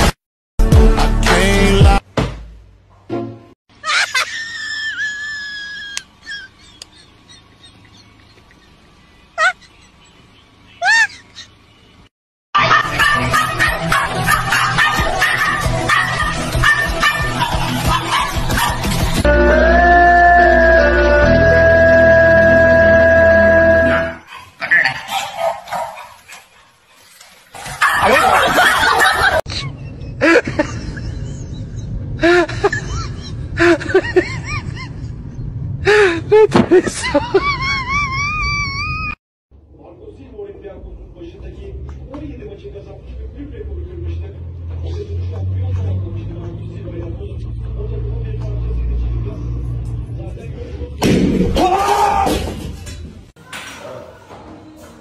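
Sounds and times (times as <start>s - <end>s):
dogs barking: 12.6s - 19.2s, 23.9s - 29.4s
person screaming: 51.6s - 52.5s.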